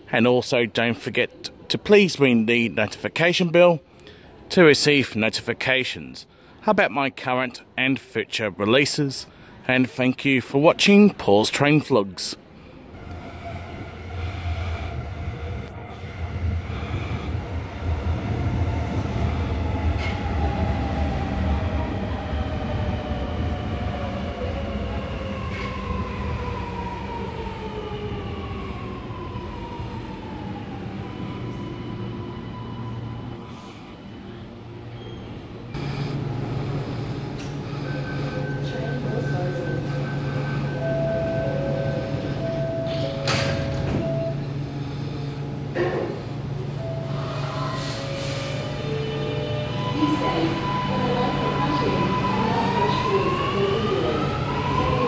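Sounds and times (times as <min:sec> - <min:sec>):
train braking: 0:12.9 - 0:55.0
train motor whine slowing: 0:35.8 - 0:45.4
short beeping tones: 0:37.8 - 0:44.4.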